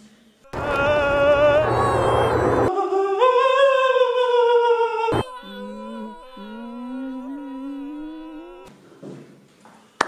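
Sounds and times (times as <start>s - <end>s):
low hummed note: 0.5s - 2.7s, 5.1s - 8.7s
steady high tone: 0.5s - 2.7s, 5.1s - 8.7s
voice holding high note: 5.1s - 8.7s.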